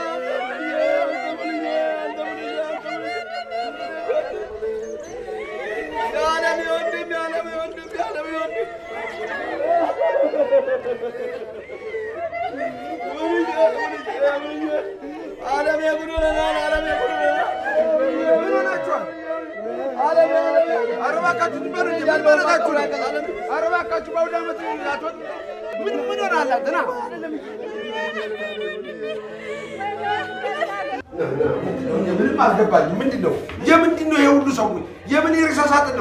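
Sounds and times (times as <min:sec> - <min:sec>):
group of people chattering: 0:00.0 - 0:36.0
voices wailing and crying out: 0:00.0 - 0:36.0.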